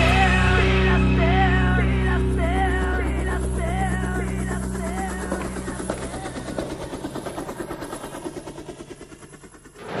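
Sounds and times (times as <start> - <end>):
helicopter rotor chopping: 0.0 - 10.0.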